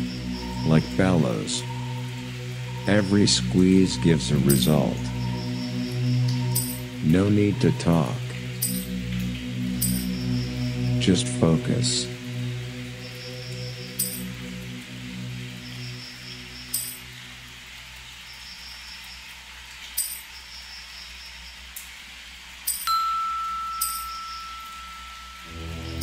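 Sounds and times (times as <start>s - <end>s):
low electronic drone: 0.0s - 17.7s, 23.8s - 26.0s
chime strikes: 22.7s - 25.8s
clear bell-like tone: 22.7s - 26.0s.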